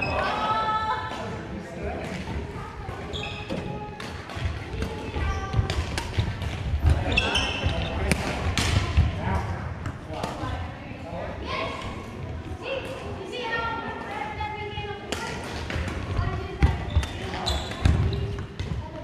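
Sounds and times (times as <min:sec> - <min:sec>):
rackets striking shuttlecock: 0:03.9 - 0:07.0
people talking: 0:06.8 - 0:19.0.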